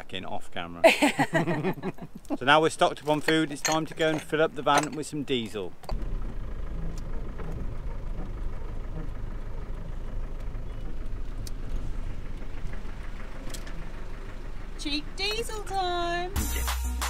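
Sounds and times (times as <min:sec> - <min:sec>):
van engine droning: 0:01.0 - 0:17.0.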